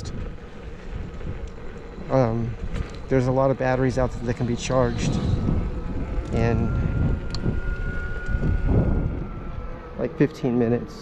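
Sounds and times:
high whine of hub motor: 0.0s - 11.0s
wind noise on microphone: 0.0s - 11.0s.

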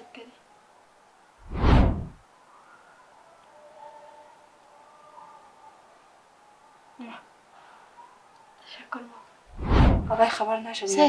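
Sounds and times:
faint movement and breath: 7.4s - 10.2s
woman speaking: 10.1s - 11.0s.

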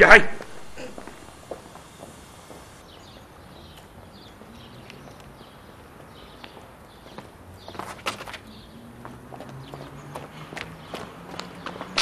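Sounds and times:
low steady hum: 0.0s - 2.9s
footsteps on pavement: 0.3s - 12.0s.

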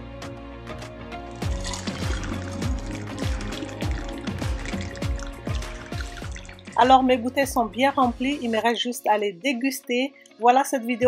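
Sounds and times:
background music: 0.0s - 11.0s
juice pouring into a bottle: 1.2s - 6.8s.

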